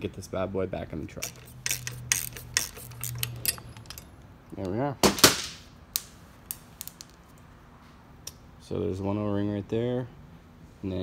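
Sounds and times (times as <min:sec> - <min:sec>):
metal fitting clattering: 0:01.2 - 0:04.1
sharp metallic clicks: 0:01.2 - 0:04.1.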